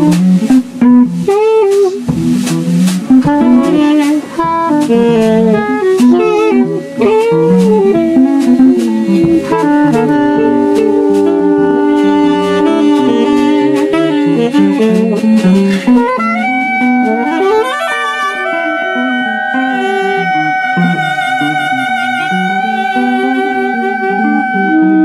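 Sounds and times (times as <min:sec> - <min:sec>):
drum kit: 0:00.0 - 0:23.8
electric guitar: 0:00.0 - 0:25.0
saxophones playing: 0:00.0 - 0:25.0.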